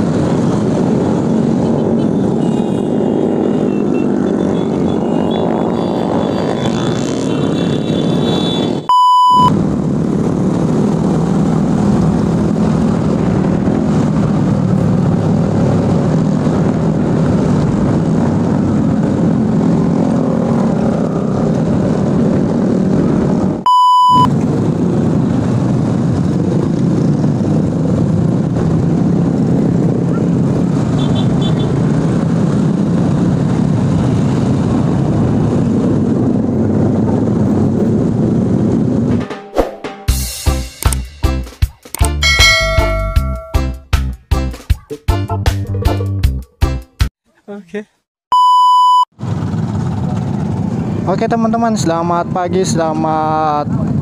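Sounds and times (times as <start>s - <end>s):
motorcycles and scooters riding: 0.0s - 39.2s, 42.0s - 43.7s, 49.2s - 54.0s
test-tone beep: 8.9s - 9.5s, 23.7s - 24.3s, 48.3s - 49.1s.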